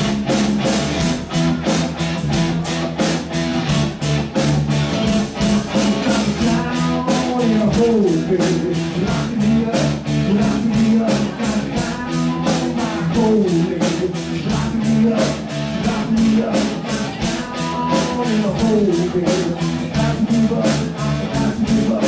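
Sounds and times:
drum kit steady beat: 0.0 - 22.0
rock band guitar: 0.0 - 22.0.

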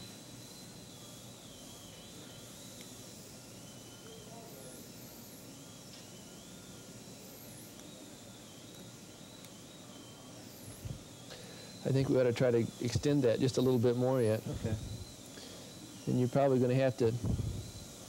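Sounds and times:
dental drill whine: 0.0 - 18.0
steady low hiss: 10.2 - 18.0.

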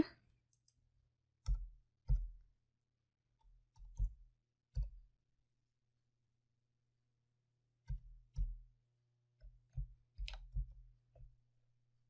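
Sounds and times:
computer keyboard keystroke: 3.7 - 5.0, 9.7 - 10.8.

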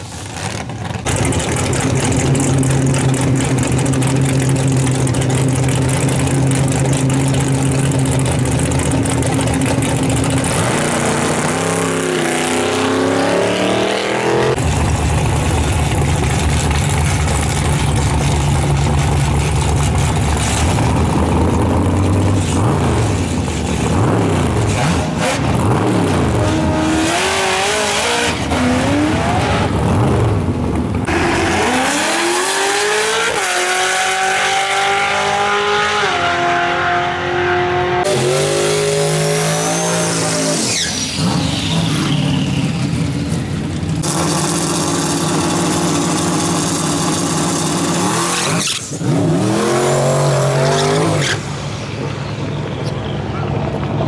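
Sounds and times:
car engines revving and launching: 0.0 - 54.0.

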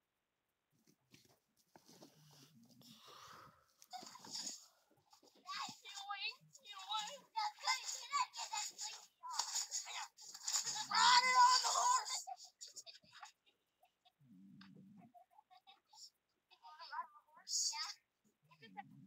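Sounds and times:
children shouting and chattering: 5.4 - 13.3.

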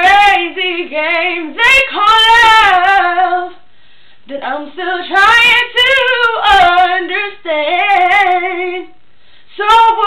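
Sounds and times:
girl singing unaccompanied: 0.0 - 3.6, 4.3 - 10.0.

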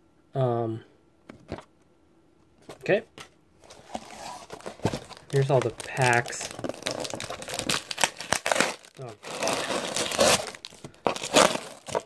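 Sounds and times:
foil wrappers crinkling: 3.7 - 12.0.

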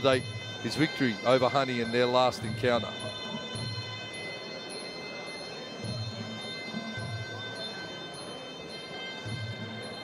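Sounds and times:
hand cymbals ringing: 0.0 - 10.0.

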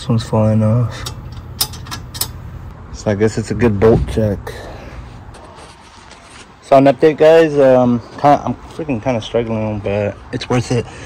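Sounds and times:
low steady hum: 0.0 - 6.8.

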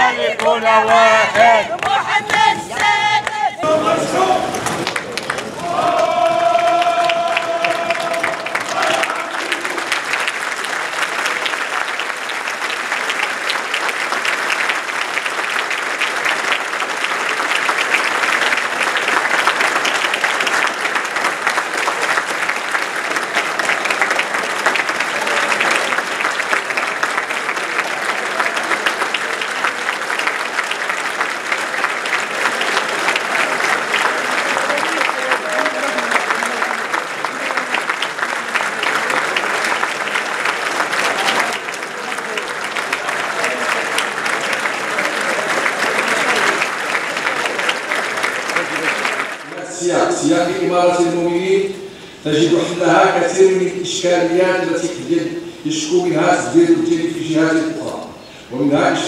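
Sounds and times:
crowd applauding: 0.0 - 53.8
crowd voices: 0.0 - 53.8.

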